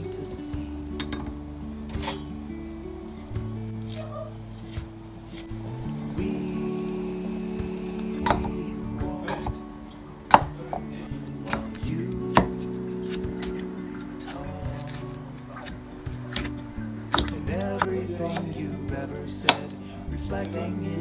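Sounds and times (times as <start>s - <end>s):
background music with sustained tones: 0.0s - 21.0s.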